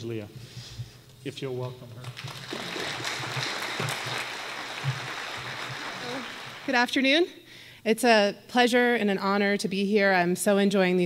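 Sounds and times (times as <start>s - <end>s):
audience applauding: 2.0s - 6.8s.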